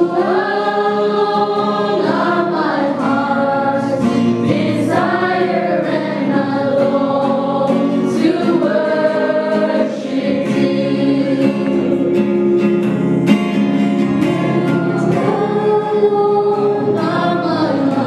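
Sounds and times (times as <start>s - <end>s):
choir singing gospel: 0.0s - 18.0s.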